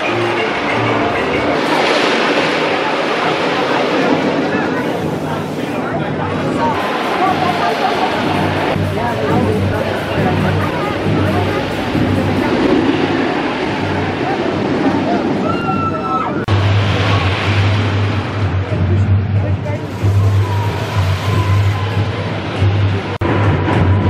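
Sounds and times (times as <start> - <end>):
roller coaster squeal: 13.8 - 16.5, 19.9 - 22.4.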